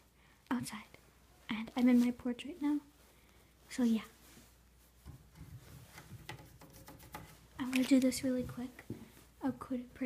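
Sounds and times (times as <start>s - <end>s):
faint rubbing and handling: 0.0s - 9.7s.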